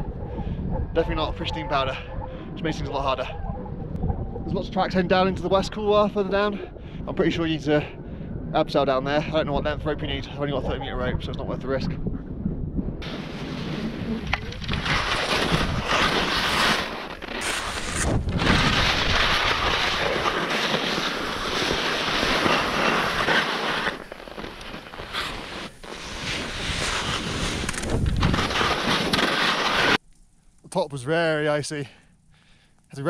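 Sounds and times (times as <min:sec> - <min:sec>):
wind on microphone: 0:00.0 - 0:23.4, 0:24.4 - 0:29.7
skis scraping over icy snow: 0:13.0 - 0:30.0.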